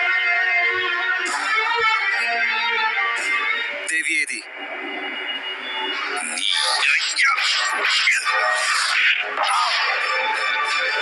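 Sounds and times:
background music: 0.0 - 11.0
man speaking: 3.9 - 4.5, 6.2 - 7.4.

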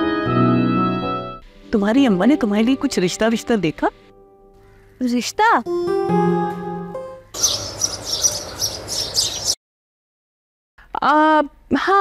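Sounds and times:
birds chirping: 7.3 - 9.6.

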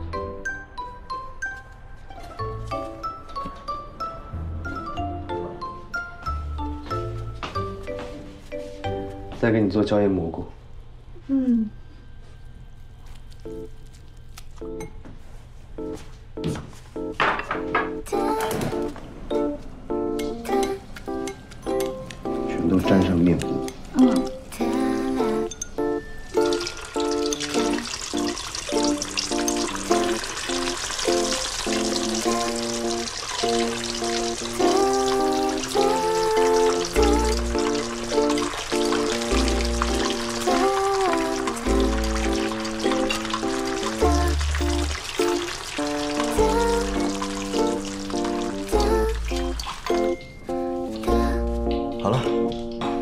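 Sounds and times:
background music: 0.0 - 10.0, 15.8 - 53.0
deep-frying sizzle: 25.0 - 53.0.

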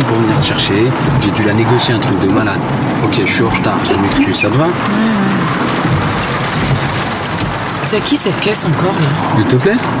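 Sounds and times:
car running noise inside cabin: 0.0 - 10.0
rain on car: 0.0 - 10.0.

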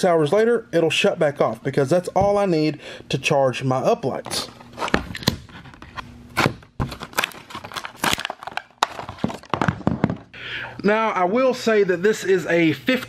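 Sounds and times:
plastic packaging clicking and crackling: 6.8 - 10.3.

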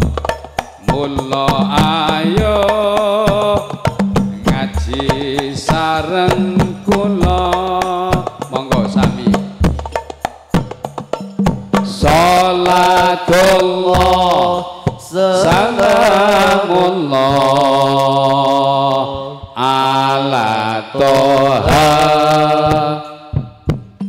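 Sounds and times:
man chanting devotional song: 0.8 - 9.5, 11.9 - 23.4.

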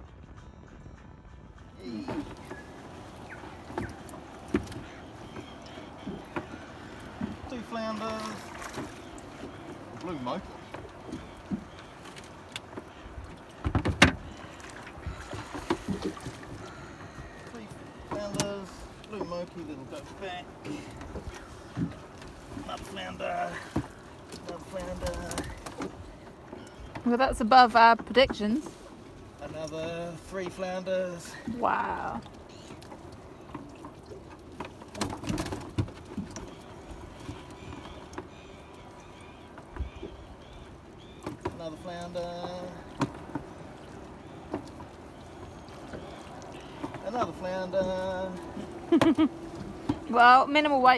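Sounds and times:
net knocking against hull: 13.6 - 14.4.

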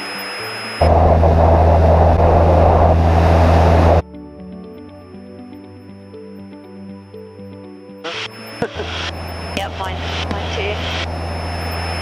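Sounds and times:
propeller plane engine droning: 0.3 - 4.0, 8.8 - 12.0.

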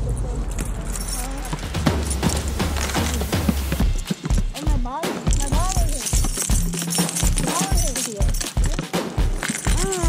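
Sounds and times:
basketball bouncing on asphalt: 3.3 - 4.7.

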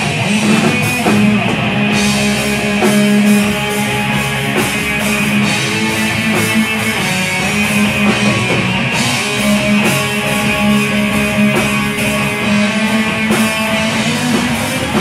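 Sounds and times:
heavy rock band playing: 0.0 - 15.0.

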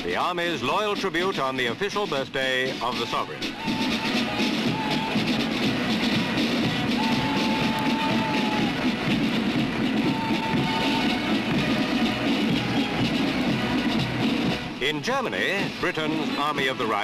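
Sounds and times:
military band playing a march: 0.0 - 17.0.

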